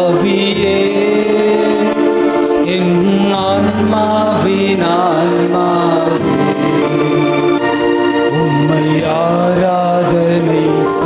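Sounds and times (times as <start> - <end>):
hymn singing: 0.0 - 11.0
sustained instrumental chords: 0.0 - 11.0
steady ticking beat: 0.1 - 11.0.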